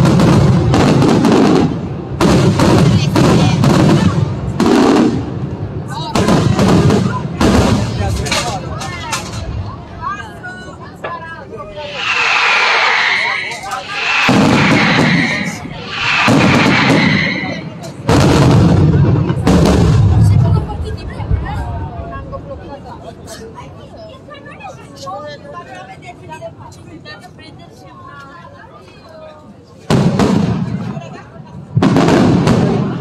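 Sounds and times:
fireworks booming bursts: 0:00.0 - 0:08.5, 0:11.7 - 0:21.7, 0:29.9 - 0:33.0
fireworks crackling: 0:00.0 - 0:09.7, 0:11.4 - 0:21.6, 0:29.8 - 0:33.0.

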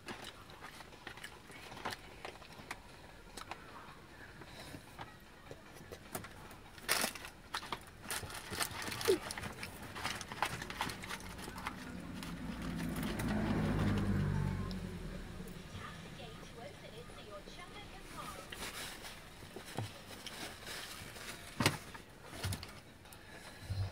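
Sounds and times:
paper wrapper crinkling: 0:06.8 - 0:13.3, 0:18.0 - 0:22.8
vehicle engine rumble: 0:09.1 - 0:20.3.

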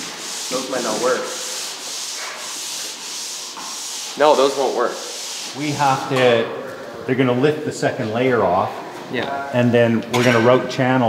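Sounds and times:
rubbing or sanding hiss: 0:00.0 - 0:06.0.

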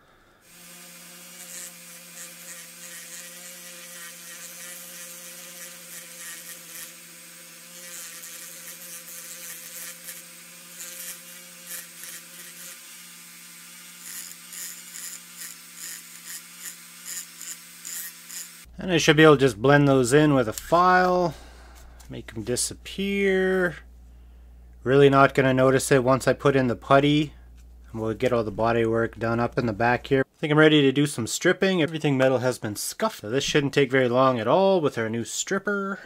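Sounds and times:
rotary tool motor whining: 0:00.5 - 0:18.7
disc grinding metal: 0:00.8 - 0:12.8.

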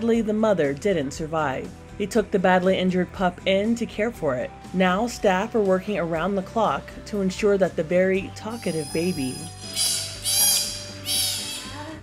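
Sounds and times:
sea otter pup squealing: 0:08.5 - 0:11.9.

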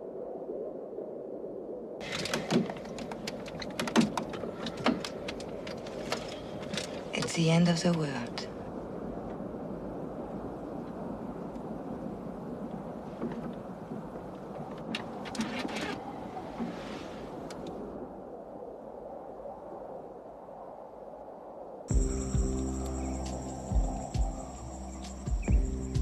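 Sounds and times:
light aircraft engine drone: 0:21.9 - 0:26.0.

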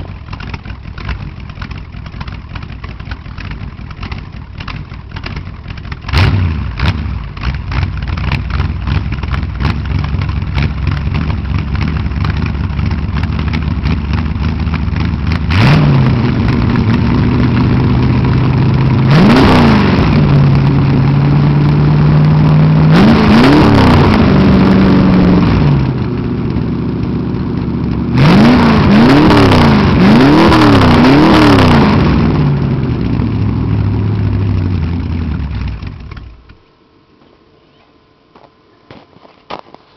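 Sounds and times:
truck engine idling and revving: 0:00.0 - 0:36.7.

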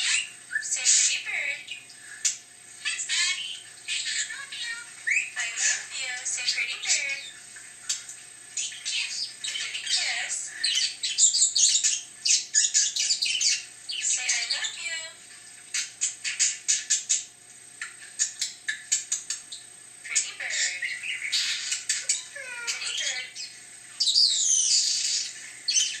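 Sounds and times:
budgerigar warbling: 0:20.1 - 0:26.0.

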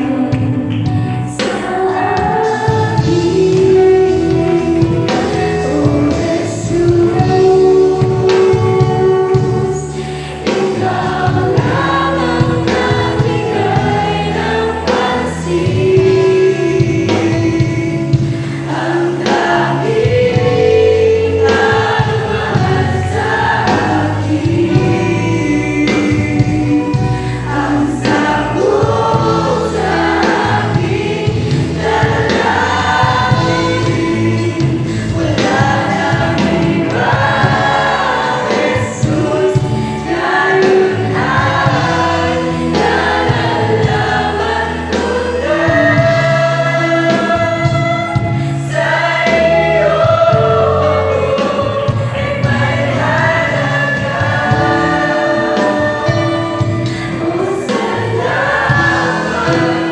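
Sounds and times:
choir singing gospel song: 0:00.0 - 0:59.9
instrumental accompaniment: 0:00.0 - 0:59.9.

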